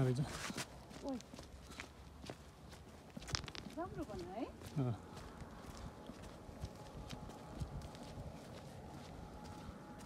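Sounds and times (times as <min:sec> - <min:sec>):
footsteps on concrete tiles: 0:00.0 - 0:10.0.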